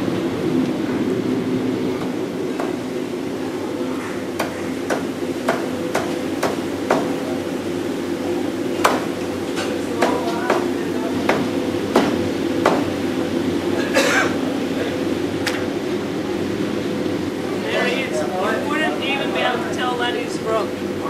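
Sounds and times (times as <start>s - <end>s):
steady hum: 0.0s - 21.0s.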